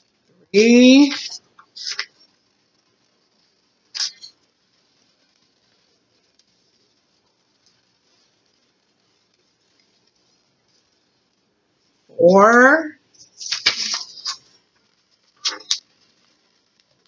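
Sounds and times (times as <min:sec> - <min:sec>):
faint hiss: 0:00.0 - 0:12.2, 0:12.9 - 0:17.0.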